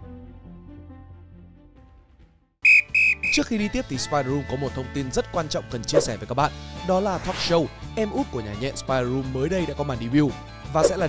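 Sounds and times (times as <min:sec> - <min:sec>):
loud high-pitched beep: 0:02.6 - 0:03.4
soft background music: 0:03.3 - 0:11.0.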